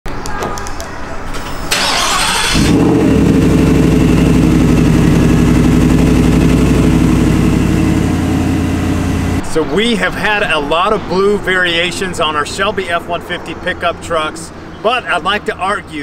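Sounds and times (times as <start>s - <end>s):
engine cranking: 1.7s - 8.4s
engine idling loudly: 2.5s - 9.4s.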